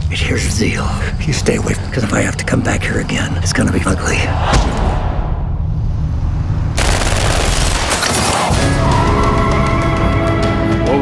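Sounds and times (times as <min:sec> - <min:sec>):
low rumbling trailer music: 0:00.0 - 0:11.0
rapid gunfire: 0:06.8 - 0:08.6.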